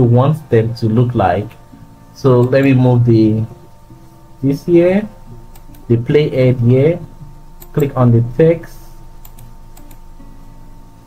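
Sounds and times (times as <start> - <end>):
faint steady hum: 0.0 - 11.0
computer mouse clicks: 5.5 - 5.9, 9.2 - 10.0.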